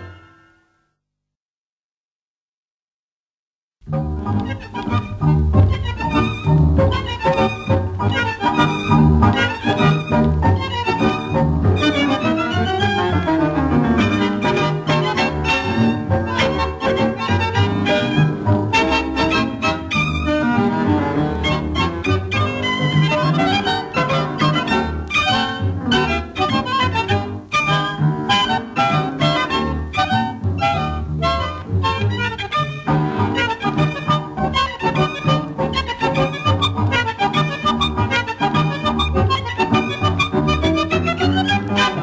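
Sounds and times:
tango quintet playing: 0.0 - 0.8, 3.8 - 42.0.

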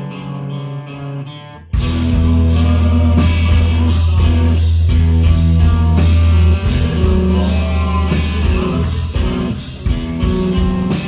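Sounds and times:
bass guitar: 0.0 - 11.0
electric guitars: 0.0 - 11.0
drum kit: 1.7 - 11.0.

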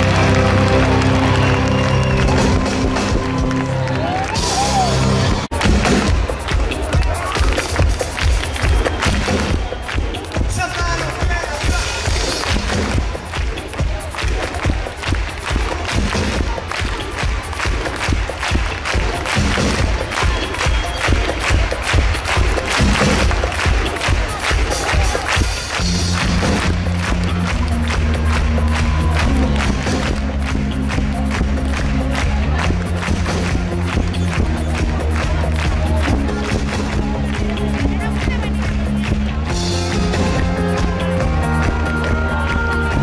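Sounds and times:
live pop-rock band playing: 0.0 - 9.5, 24.5 - 43.0
low bass and keyboard chords: 0.0 - 43.0
fast driving drum beat: 1.2 - 43.0.

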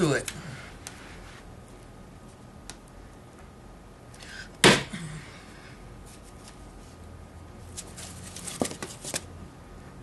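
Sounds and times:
cardboard crackling and scraping: 7.7 - 9.3.

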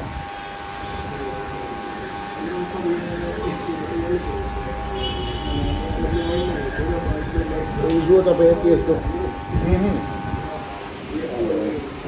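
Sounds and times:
people talking: 0.6 - 12.0
electric hair clippers humming: 0.7 - 10.9.

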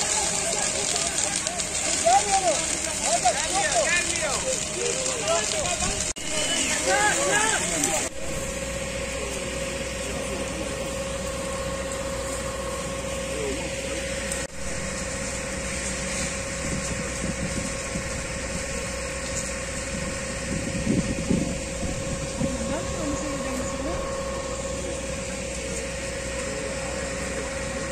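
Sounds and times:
faint voices: 0.0 - 14.5, 18.4 - 27.9
engine idling: 0.0 - 27.9.

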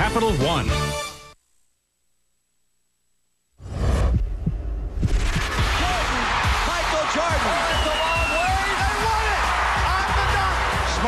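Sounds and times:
throbbing bass pulses: 3.6 - 6.1
short low thumps: 3.9 - 5.8.

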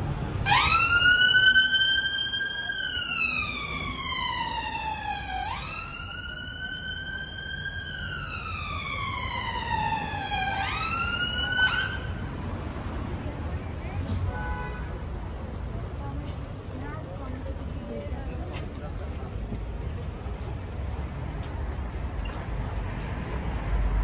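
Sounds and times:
ambulance siren wailing: 0.4 - 12.2.

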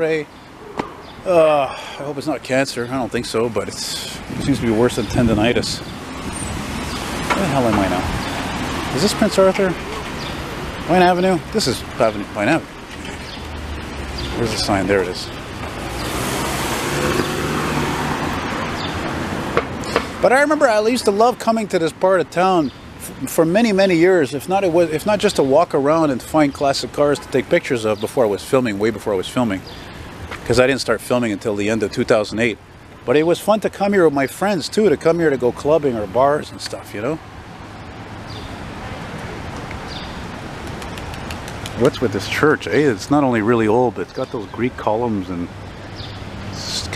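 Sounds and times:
traffic noise: 0.0 - 46.9
car driving past: 15.6 - 20.2.

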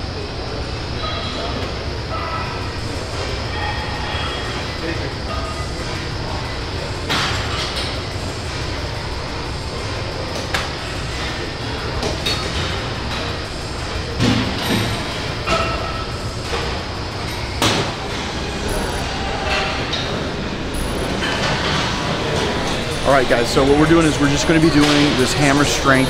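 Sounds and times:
voices: 14.9 - 26.0.

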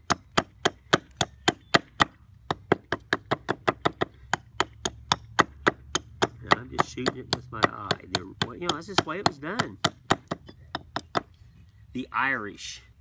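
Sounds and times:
hatchet chopping wood: 0.0 - 11.4.

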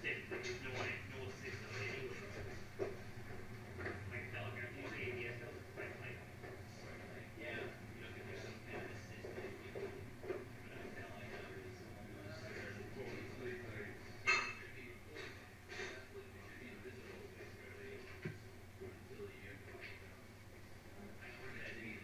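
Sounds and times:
faint indistinct voices: 0.0 - 22.0
low steady hum: 0.0 - 22.0.

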